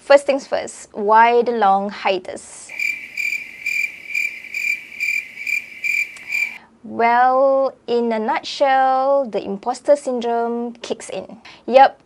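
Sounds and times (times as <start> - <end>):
crickets chirping: 2.7 - 6.6.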